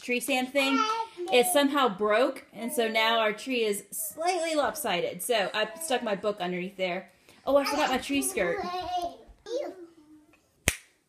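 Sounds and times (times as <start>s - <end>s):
toddler vocalizing: 0.6s - 1.7s, 4.2s - 4.8s, 7.6s - 10.4s.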